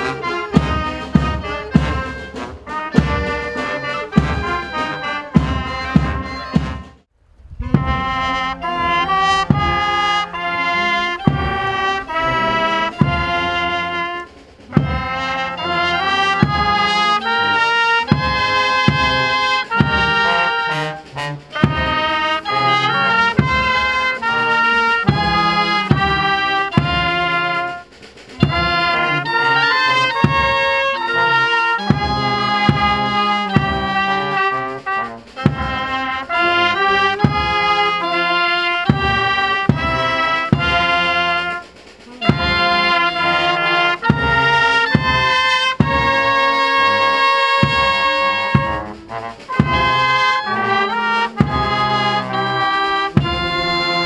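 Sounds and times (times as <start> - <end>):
brass band playing: 0.0 - 54.0
snare drum beats: 0.0 - 54.0.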